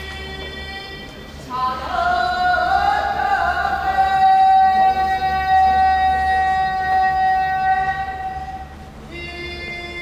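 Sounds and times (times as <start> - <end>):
person singing a long held note: 0.0 - 10.0.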